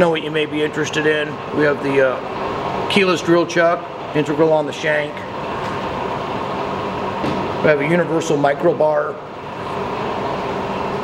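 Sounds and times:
milling machine humming: 0.0s - 11.0s.

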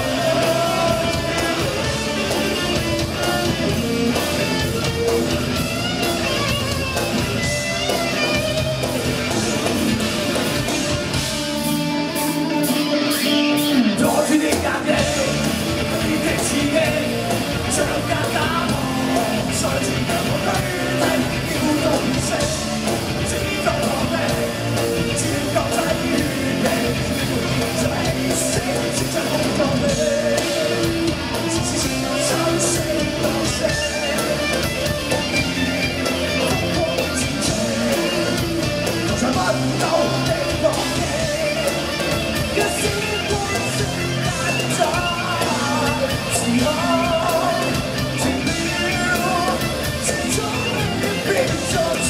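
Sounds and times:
drums and cymbals: 0.0s - 52.0s
electric guitars: 0.0s - 52.0s
rock band playing: 0.0s - 52.0s.

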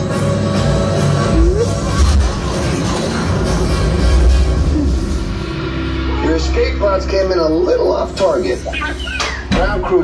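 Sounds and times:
ride soundtrack music: 0.0s - 10.0s.

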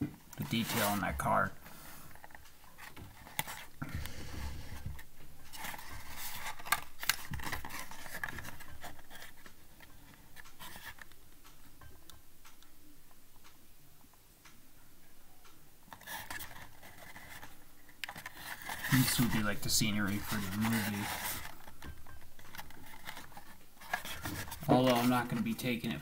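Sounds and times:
cardboard rustling: 0.4s - 11.1s, 15.9s - 26.0s
cardboard box rubbing and scraping: 20.1s - 21.5s.

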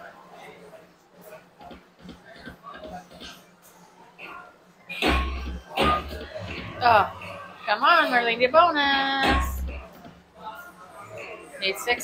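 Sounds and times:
casino background chatter: 0.0s - 12.0s.

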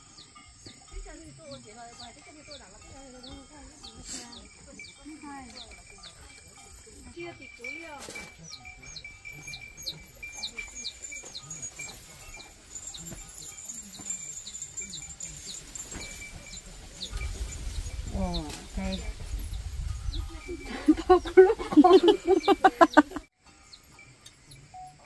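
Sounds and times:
bird chirping: 0.0s - 25.0s
faint distant voices: 0.0s - 25.0s.

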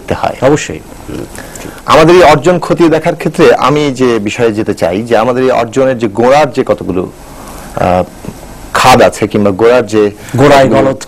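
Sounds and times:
man speaking: 0.0s - 7.2s, 7.8s - 11.0s.

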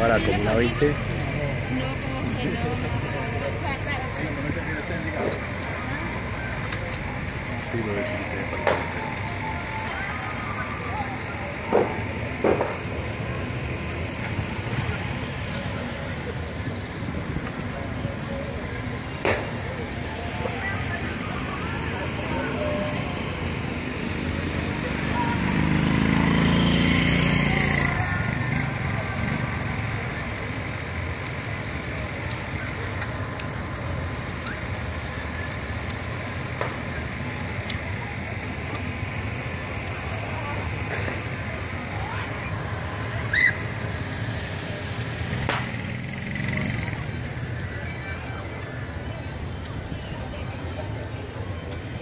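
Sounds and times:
distant traffic hum: 0.0s - 52.0s
distant firecracker pops: 11.7s - 12.9s, 19.2s - 19.6s, 45.4s - 45.8s
vehicle passing: 19.6s - 31.4s, 39.3s - 49.0s.

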